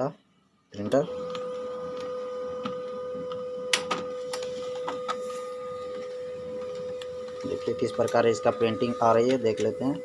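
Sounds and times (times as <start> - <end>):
printer motor whine: 0.8 - 10.0
printer mechanical clicks: 6.6 - 10.0.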